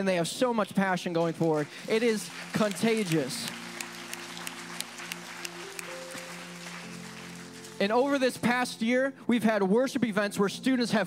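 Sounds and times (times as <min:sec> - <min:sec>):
congregation clapping: 0:01.2 - 0:08.5
keyboard pad chords: 0:02.6 - 0:09.0.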